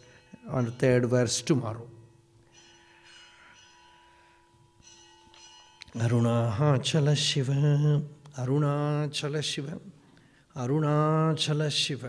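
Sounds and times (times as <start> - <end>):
faint ringing: 0.0 - 8.2.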